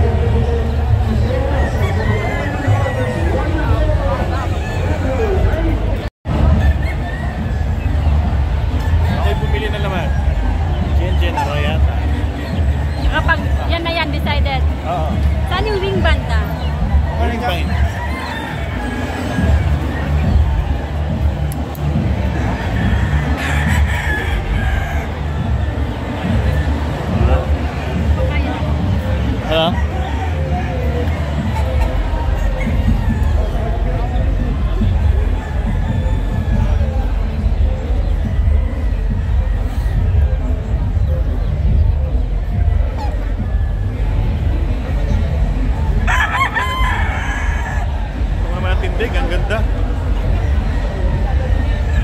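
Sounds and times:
background music: 0.0 - 52.0
rooster crowing: 1.5 - 5.4, 17.7 - 20.5, 22.4 - 25.4, 35.3 - 37.0, 46.0 - 48.0.

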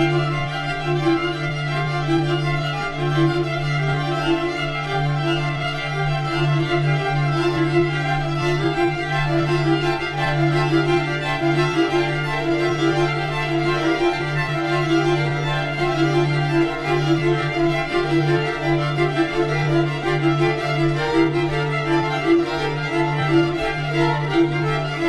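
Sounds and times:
string orchestra holding chords: 0.0 - 25.0.

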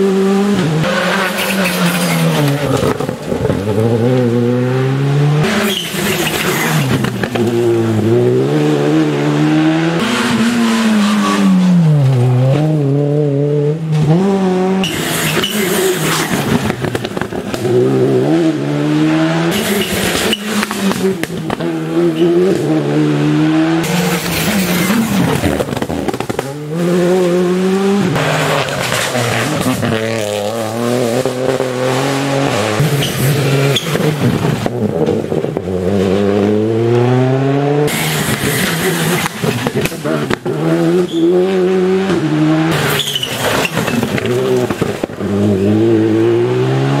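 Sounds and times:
rally cars passing revving: 0.0 - 47.0.

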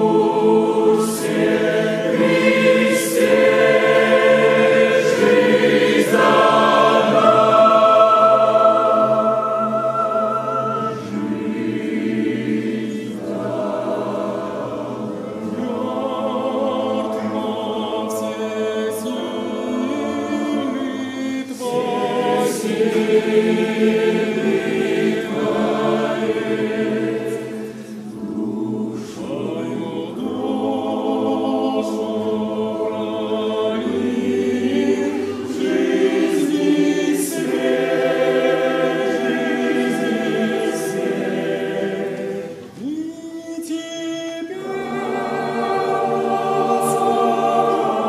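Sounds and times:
choir singing a hymn: 0.0 - 48.0.

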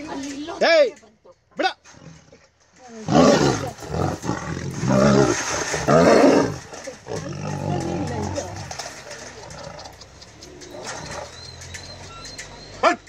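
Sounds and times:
tigers roaring and snarling: 1.8 - 13.0
tiger growling: 1.9 - 12.8.

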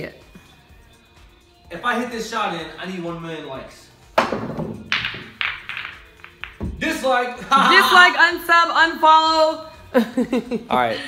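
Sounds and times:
pool balls clacking: 4.1 - 7.2.

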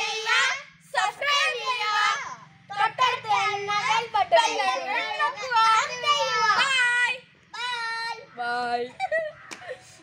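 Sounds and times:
children calling in sing-song: 0.0 - 8.4.

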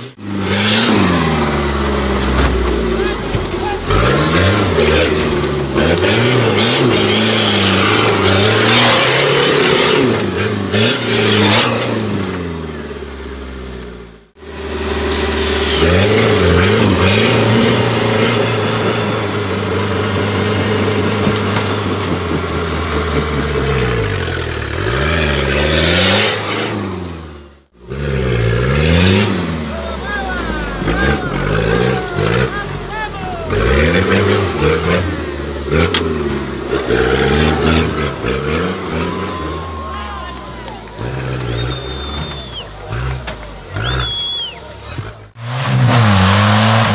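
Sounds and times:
buggy engine revving hard: 0.0 - 46.9.

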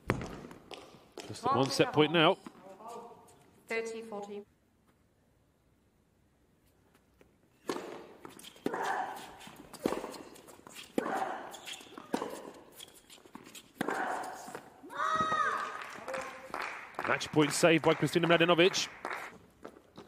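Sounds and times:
racket striking tennis ball: 7.6 - 15.4.

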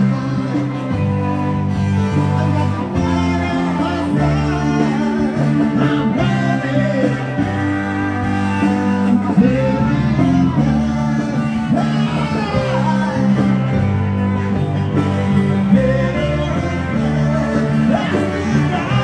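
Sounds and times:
band playing music: 0.0 - 19.0
guitar: 0.0 - 19.0.

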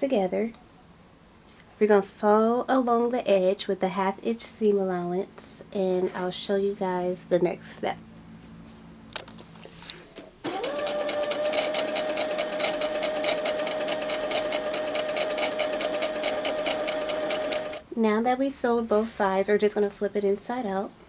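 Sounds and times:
sewing machine running: 10.4 - 17.8.

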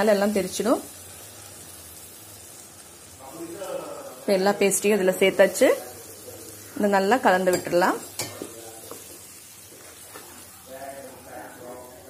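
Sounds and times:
soft sizzle of frying: 0.0 - 12.0
spatula stirring in pan: 6.0 - 11.8.

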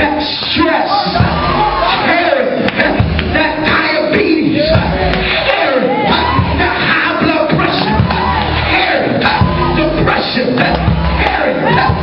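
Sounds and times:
band music: 0.0 - 12.0
congregation calling out: 0.0 - 12.0.

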